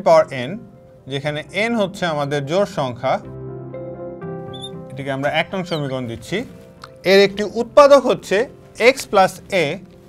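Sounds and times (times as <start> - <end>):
soft music of held chords: 0.0 - 10.0
marker squeaking on glass board: 4.5 - 4.8, 5.4 - 6.2.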